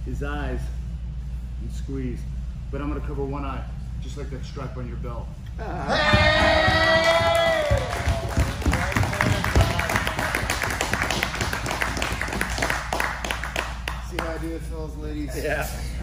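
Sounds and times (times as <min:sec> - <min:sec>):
man cheering: 0:05.6 - 0:09.9
people applauding: 0:06.2 - 0:14.5.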